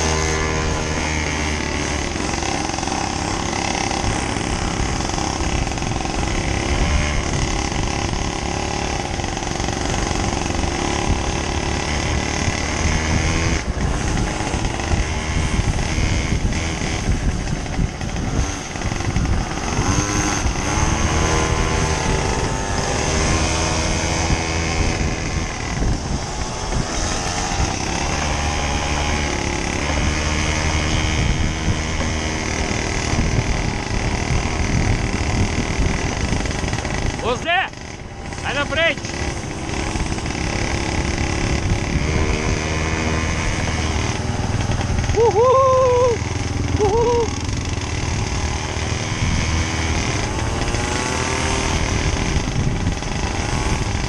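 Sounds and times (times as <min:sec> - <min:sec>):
small motorcycle engine running: 0:00.0 - 0:54.0.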